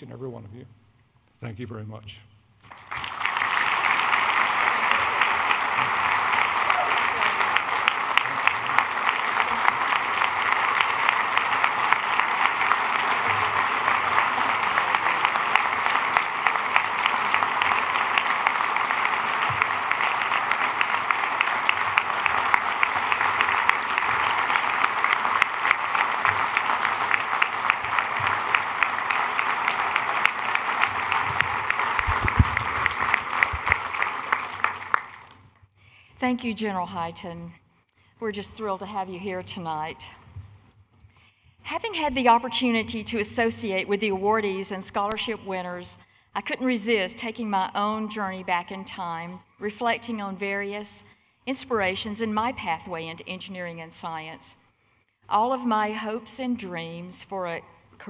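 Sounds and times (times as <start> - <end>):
audience applauding: 2.6 - 35.6.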